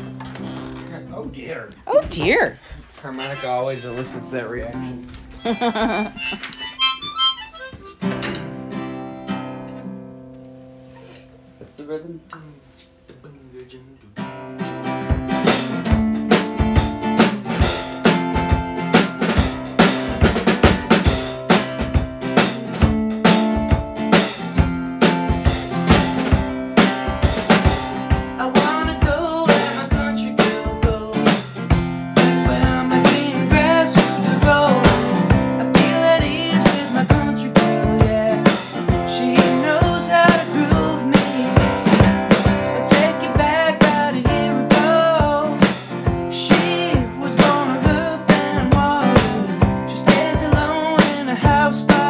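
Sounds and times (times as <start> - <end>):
acoustic guitar: 0.0 - 52.0
drum kit steady beat: 1.2 - 3.1, 4.2 - 8.7, 14.7 - 52.0
harmonica melody: 3.0 - 9.2.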